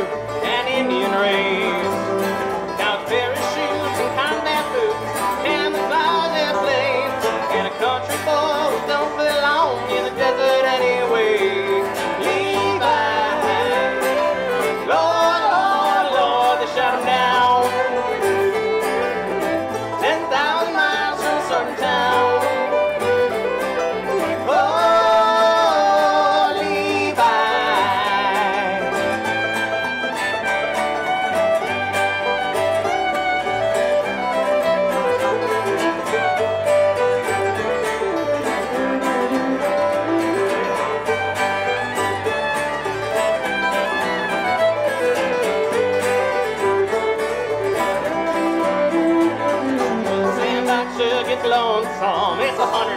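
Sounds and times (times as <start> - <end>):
banjo picking: 0.0 - 52.9
fiddle melody: 0.0 - 52.9
guitar: 0.0 - 52.9.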